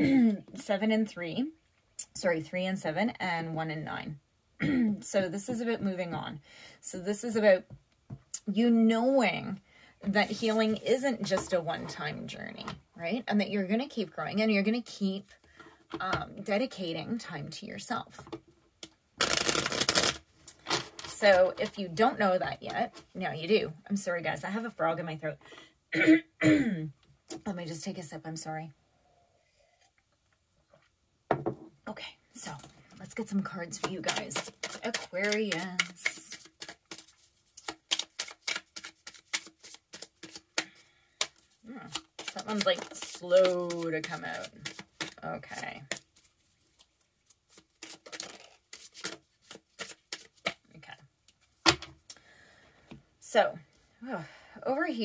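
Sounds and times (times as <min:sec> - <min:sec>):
cards riffle-shuffled by hand: 0:19.2 - 0:20.2, 0:33.7 - 0:51.6.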